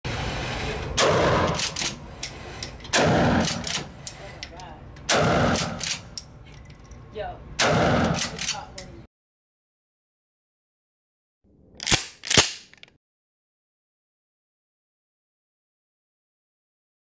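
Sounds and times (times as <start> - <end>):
shotgun blasts: 1.0 - 2.0, 2.9 - 3.9, 5.1 - 6.1, 7.6 - 8.5
shotgun slide clacks: 1.0 - 6.3, 11.8 - 13.0.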